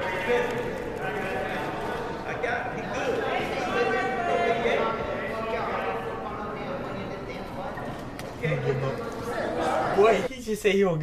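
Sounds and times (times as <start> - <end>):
room chatter: 0.0 - 10.9.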